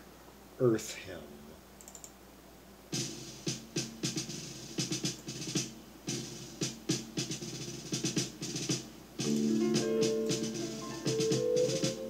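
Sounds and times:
martial drum pattern: 0:02.9 - 0:12.0.

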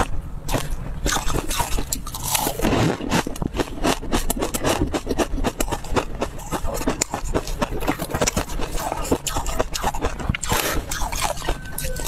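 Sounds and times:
crunching and chewing food: 0:00.0 - 0:12.0.

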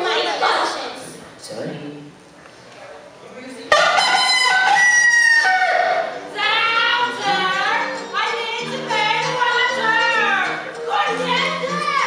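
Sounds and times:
rooster crowing: 0:03.7 - 0:06.2
music with singing: 0:06.1 - 0:12.0.

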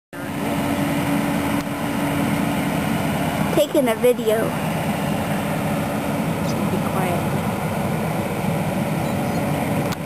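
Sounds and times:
excavator diesel engine running: 0:00.2 - 0:10.0.

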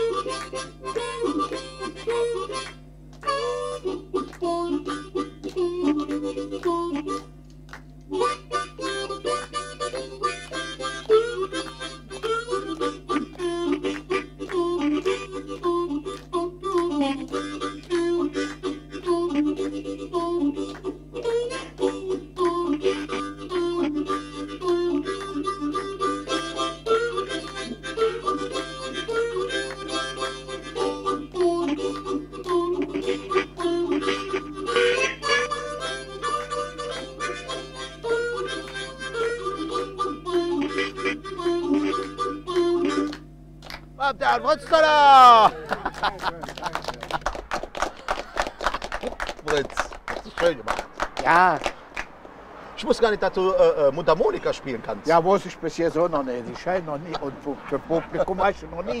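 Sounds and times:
harmonica tune: 0:00.0 - 0:49.6, 0:53.4 - 0:59.0.

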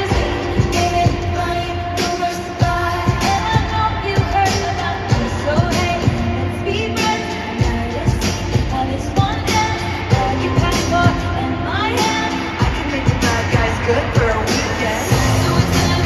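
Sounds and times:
live pop band with drum beat: 0:00.0 - 0:16.0
woman singing into a microphone: 0:00.0 - 0:16.0.

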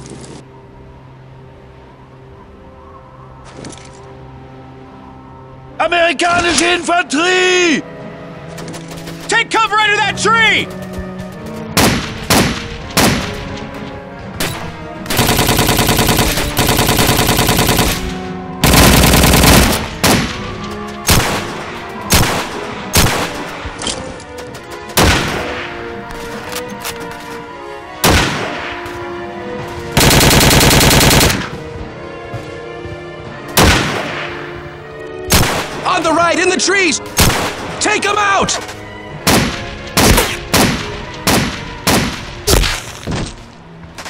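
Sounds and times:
background music: 0:00.0 - 0:44.0
rifle shots: 0:11.8 - 0:13.5, 0:14.4 - 0:20.5, 0:21.1 - 0:23.5, 0:30.0 - 0:31.6, 0:33.6 - 0:34.4, 0:35.3 - 0:35.9, 0:37.2 - 0:37.8, 0:39.3 - 0:42.3
machine-gun bursts: 0:15.1 - 0:18.0, 0:18.6 - 0:19.8, 0:30.0 - 0:31.4.

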